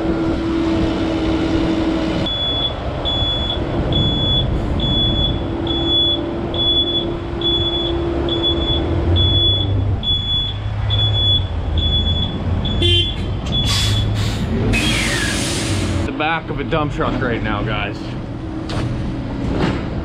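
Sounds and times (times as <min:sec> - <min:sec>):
diesel engine running: 0:00.0 - 0:20.0
high-pitched alarm beeping: 0:02.3 - 0:14.2.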